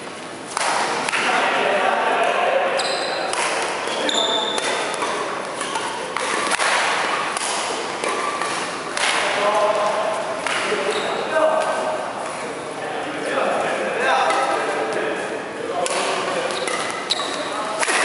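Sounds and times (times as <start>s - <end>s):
racket striking shuttlecock: 0.5s - 1.3s, 3.2s - 9.4s, 15.8s - 17.2s, 17.8s - 18.0s
players' voices: 0.6s - 18.0s
sneakers squeaking on court: 2.8s - 6.5s, 10.8s - 11.3s, 16.5s - 17.6s.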